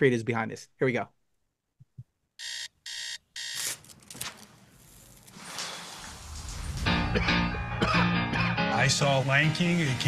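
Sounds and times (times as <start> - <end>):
whoosh of noise: 5.4 - 7.8.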